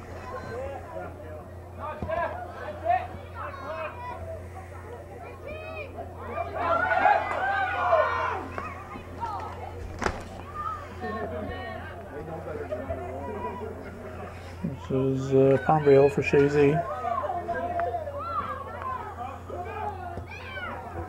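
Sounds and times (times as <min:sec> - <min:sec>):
people calling and shouting: 0:00.0 - 0:21.0
steady low hum: 0:00.0 - 0:21.0.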